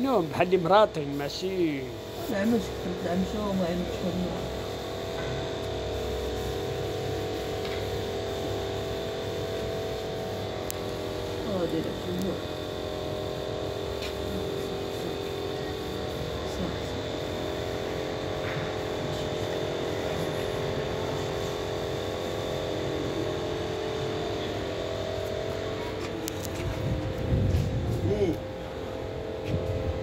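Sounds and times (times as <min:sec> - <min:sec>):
mechanical hum with held tones: 0:00.0 - 0:30.0.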